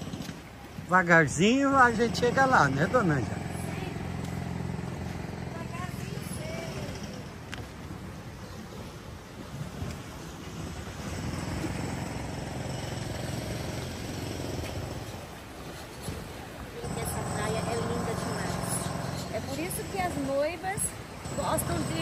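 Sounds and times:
beach ambience: 0.0s - 22.0s
wind rumble on microphone: 2.9s - 22.0s.

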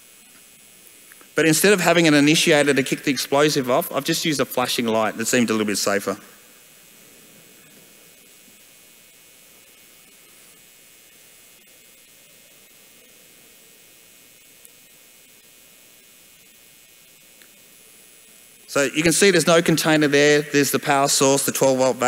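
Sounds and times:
faint background hiss: 0.0s - 22.0s.

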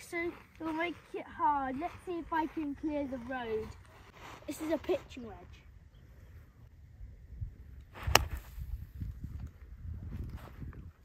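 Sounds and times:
golf club striking ball: 8.0s - 8.4s.

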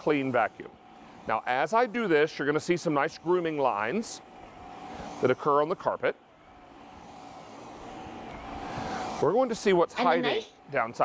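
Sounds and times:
vacuum cleaner humming on carpet: 0.0s - 11.0s.

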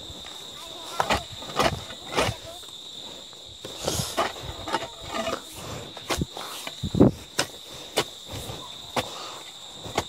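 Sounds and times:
insects droning: 0.0s - 10.0s
hoe chopping into soil: 0.9s - 2.5s.

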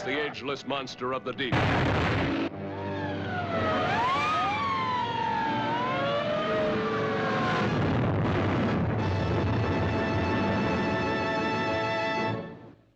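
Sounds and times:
sirens wailing: 2.2s - 12.0s.

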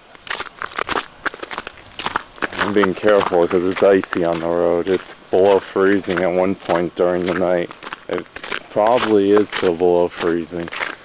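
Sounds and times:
footsteps crunching on icy snow: 0.0s - 11.0s.

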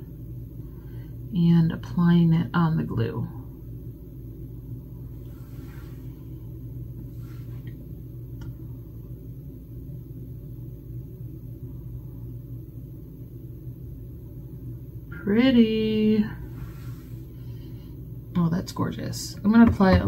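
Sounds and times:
low room hum and rumble: 0.0s - 20.0s
faint soft rustles: 5.1s - 6.4s, 7.0s - 7.8s.

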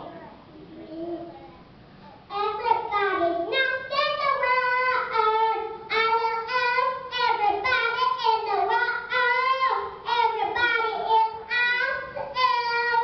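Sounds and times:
girl singing into microphone: 2.3s - 13.0s.

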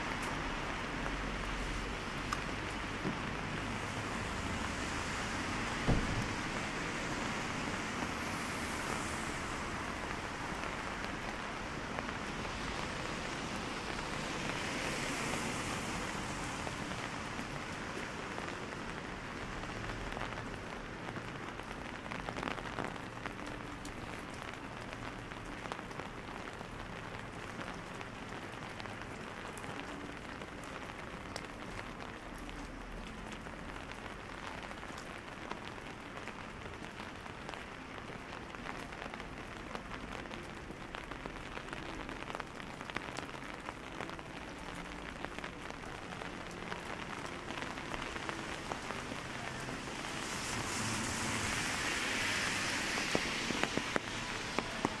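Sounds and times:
rain on wet paving: 0.0s - 55.0s.

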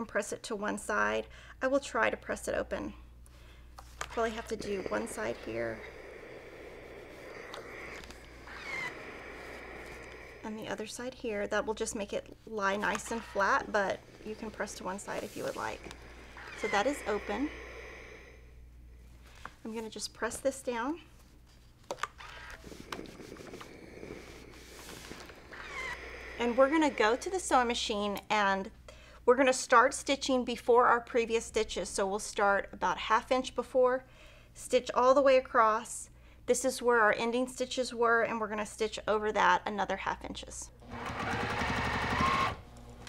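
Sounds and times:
steam iron sliding over fabric: 4.0s - 11.2s, 12.6s - 18.3s, 22.5s - 27.8s.

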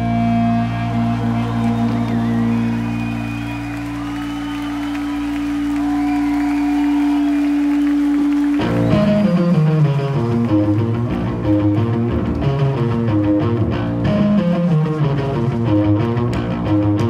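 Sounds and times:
crowd applause: 0.2s - 12.4s
plucked guitar pattern: 8.6s - 17.0s.

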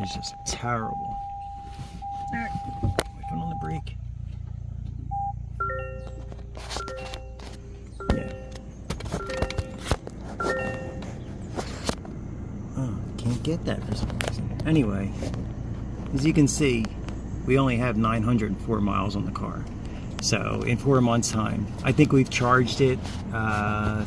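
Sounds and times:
low cabin hum: 0.0s - 24.0s
multi-note warning chime: 5.2s - 11.2s.

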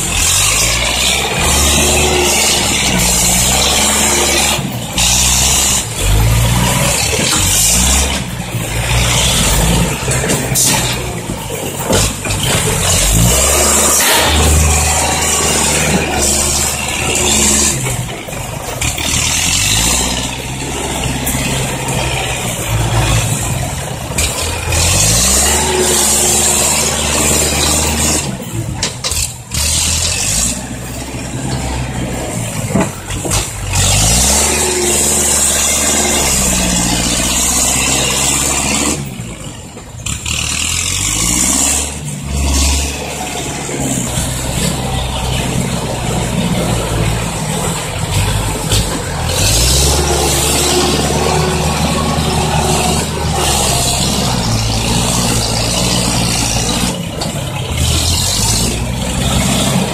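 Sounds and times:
diesel truck engine revving: 0.0s - 59.9s.

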